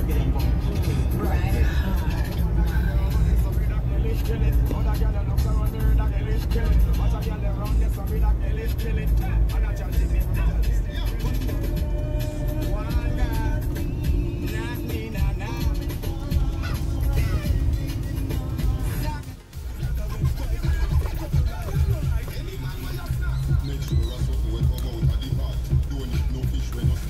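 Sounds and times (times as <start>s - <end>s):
car rumbling from inside cabin: 0.0s - 27.0s
music: 0.0s - 27.0s.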